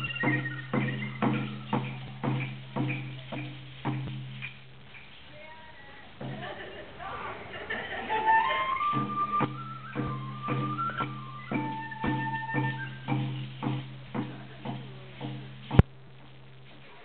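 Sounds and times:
flute melody: 0.0 - 2.7, 8.1 - 13.9
steady drum beat: 0.0 - 6.8, 8.1 - 16.8.

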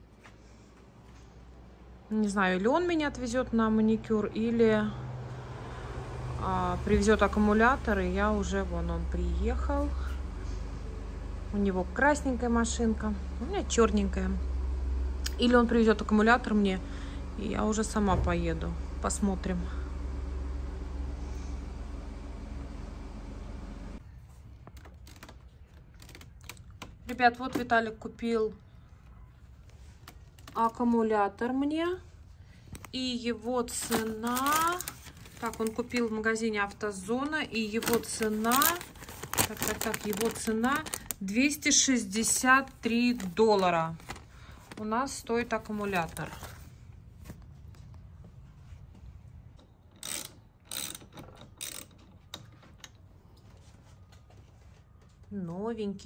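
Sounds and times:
steady low hum: 31.5 - 50.7
objects rustling being handled: 32.4 - 49.4
ratchet wrench clicking: 50.0 - 52.0.

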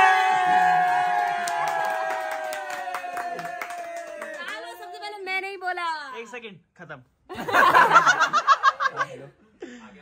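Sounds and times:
group clapping: 0.0 - 5.3.

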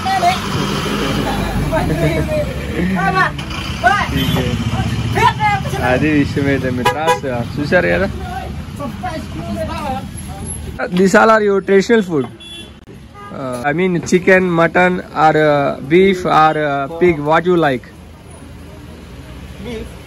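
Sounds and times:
people talking: 0.0 - 12.3
low rumble of street traffic: 0.0 - 20.0.

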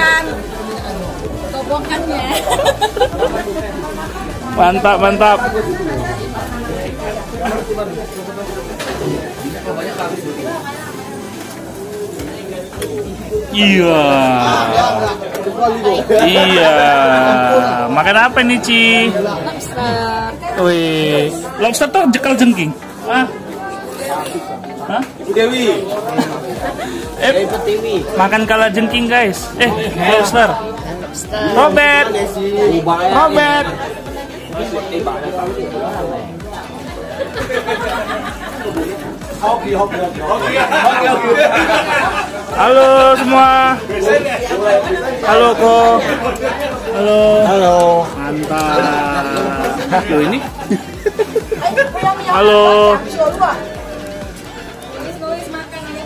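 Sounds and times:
people chattering: 0.0 - 56.0.

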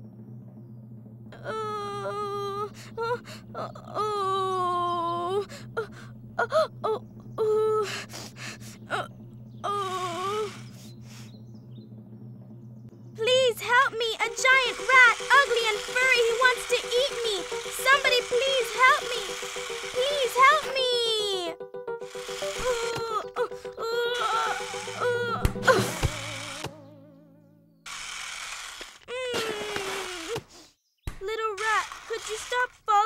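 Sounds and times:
chirpy cartoon music: 0.0 - 27.8
cartoon character cries and squeals: 9.7 - 10.7, 22.6 - 26.9, 29.1 - 30.4.

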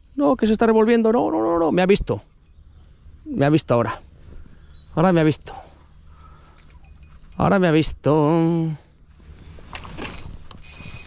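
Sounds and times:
fishing reel drag ratcheting buzz: 9.9 - 11.0.

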